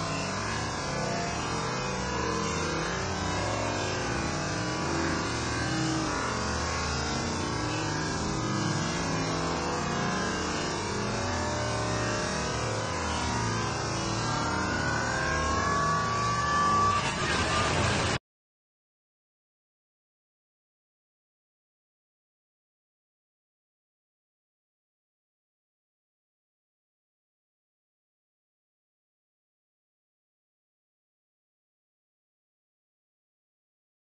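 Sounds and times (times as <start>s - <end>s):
fountain water splashing: 16.9s - 18.2s.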